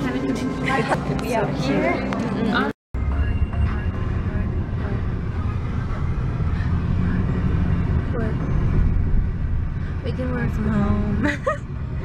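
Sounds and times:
car road and engine rumble: 3.0s - 12.0s.

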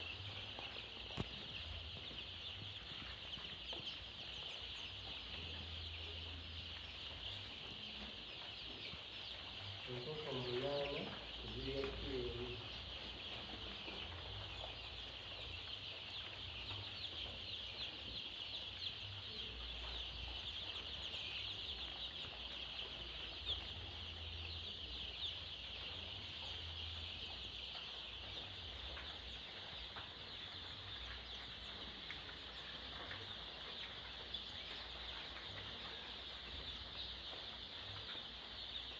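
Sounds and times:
chicks cheeping: 0.0s - 38.9s.

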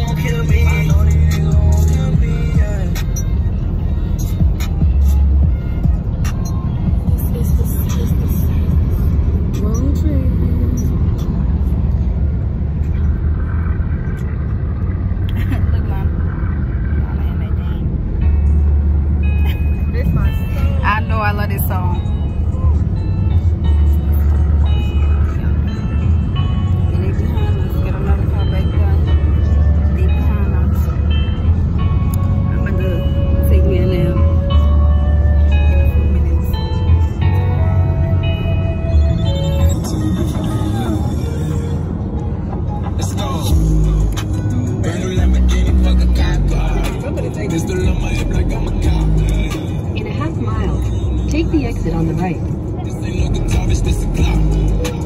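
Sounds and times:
music: 0.0s - 11.4s, 18.2s - 55.0s
car road and engine rumble: 0.0s - 55.0s.

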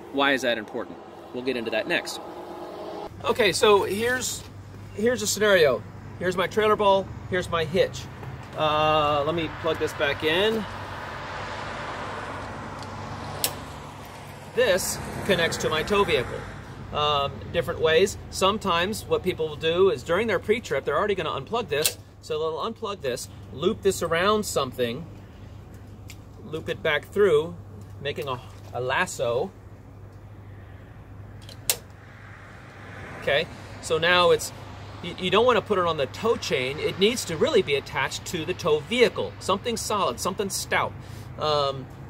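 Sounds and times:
steady low hum: 0.0s - 6.2s
outdoor low hum and rumble: 0.0s - 42.0s.

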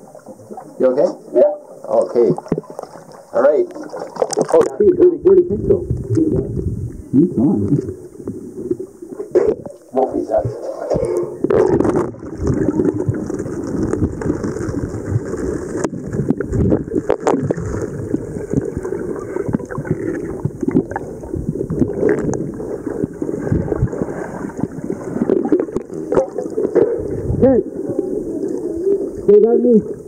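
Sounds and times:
underwater sloshing and gurgling: 0.0s - 30.0s.

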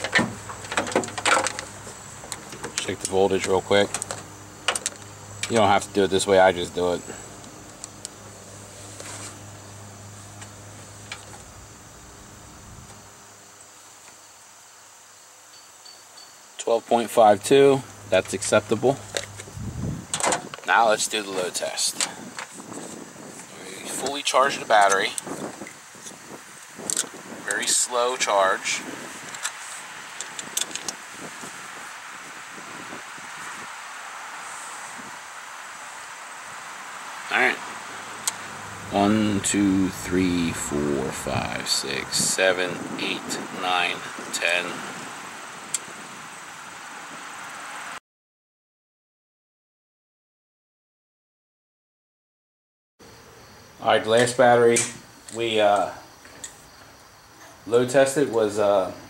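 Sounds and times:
low steady hum: 0.0s - 13.9s
steady background hiss: 0.0s - 48.0s, 53.0s - 59.0s.

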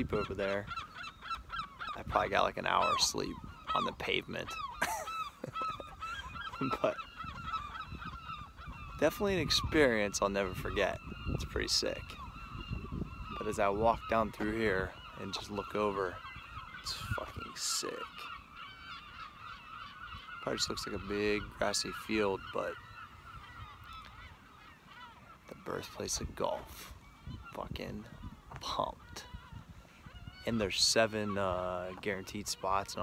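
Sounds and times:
birds honking: 0.0s - 33.0s.

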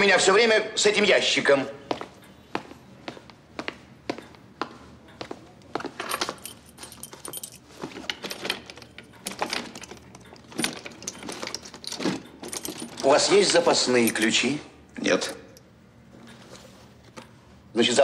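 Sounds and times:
key rattling in a lock: 6.0s - 15.7s.

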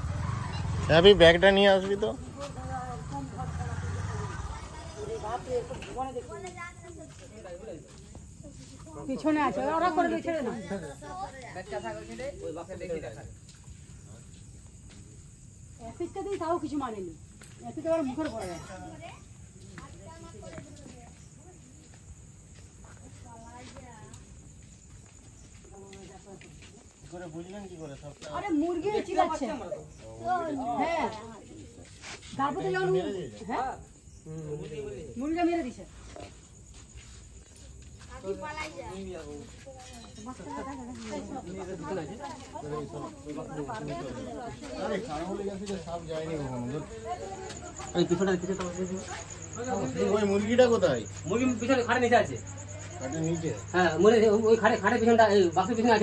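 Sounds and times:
night insects chirring: 0.0s - 56.0s.

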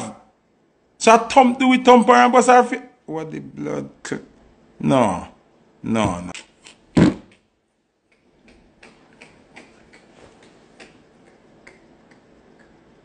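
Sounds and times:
faint irregular clicks: 8.1s - 13.0s.

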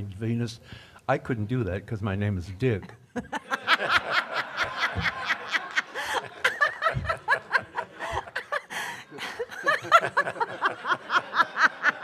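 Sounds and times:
audience laughing: 3.2s - 12.0s.

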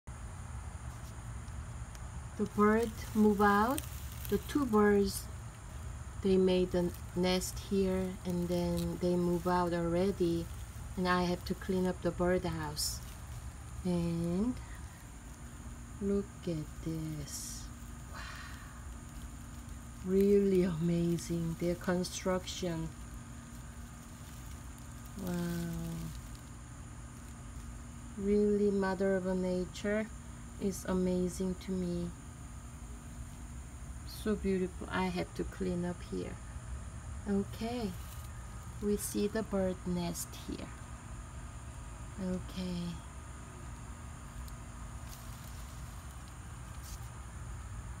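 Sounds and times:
faint background noise: 0.1s - 48.0s
faint high hum: 0.1s - 48.0s
soft rustles: 2.4s - 27.9s, 37.8s - 39.2s, 44.4s - 47.3s.

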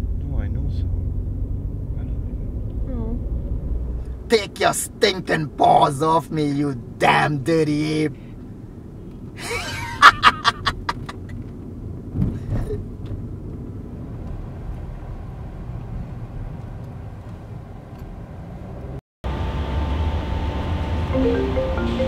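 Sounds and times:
car cabin road rumble: 0.0s - 21.1s
man laughing: 9.4s - 11.4s
music: 21.0s - 22.0s.

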